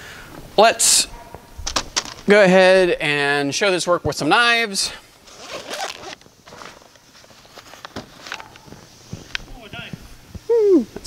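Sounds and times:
zipper on fabric bag: 5.3 - 6.2
rustling and light clicks: 5.9 - 10.5.

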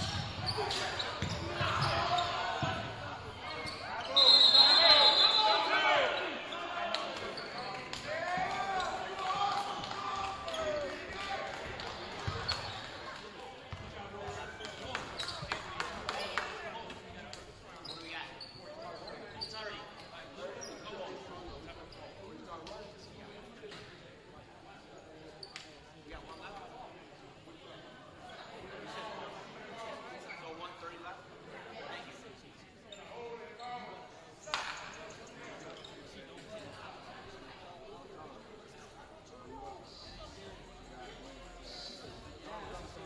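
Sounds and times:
players and spectators shouting: 0.1 - 11.8
referee's whistle: 3.7 - 5.8.

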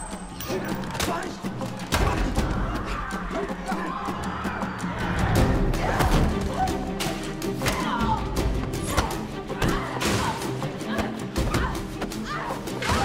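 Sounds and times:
tense orchestral score: 0.0 - 13.0.

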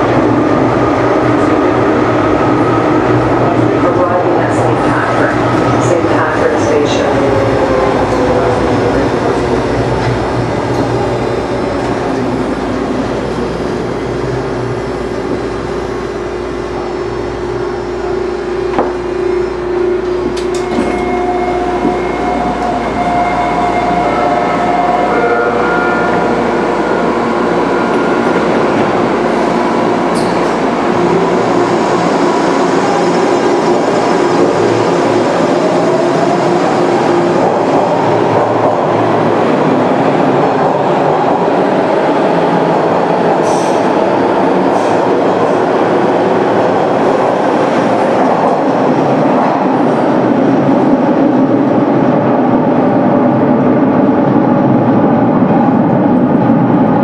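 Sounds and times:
train wheels rumbling on track: 0.0 - 57.0.

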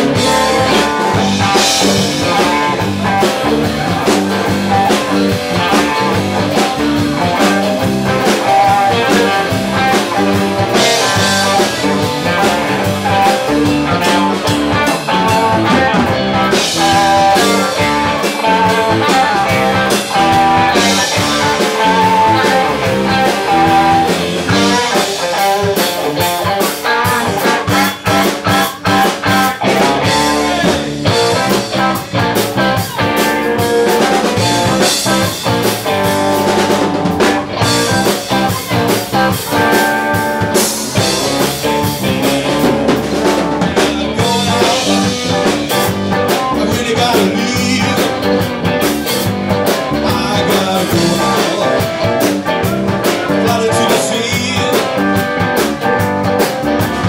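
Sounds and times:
drum kit beat: 0.0 - 57.0
electric bass: 0.0 - 57.0
electric guitars: 0.0 - 57.0
held lead guitar notes: 0.0 - 57.0.

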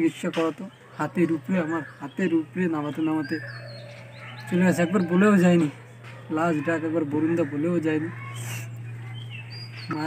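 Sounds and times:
steady low hum: 0.7 - 10.0.

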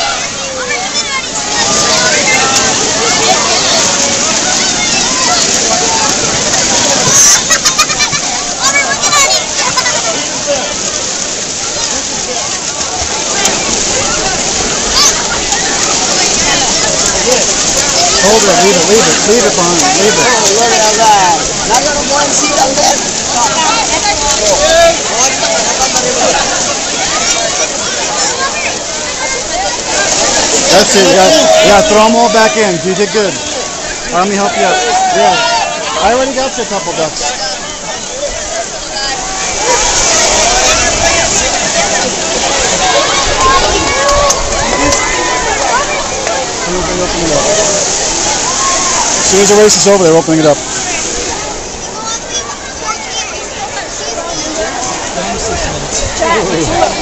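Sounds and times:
crowd chatter: 0.0 - 57.0
pool water splashing: 0.0 - 57.0.

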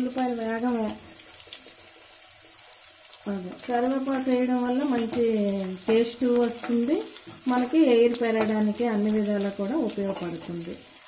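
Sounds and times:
onions frying in hot oil: 0.0 - 11.0.

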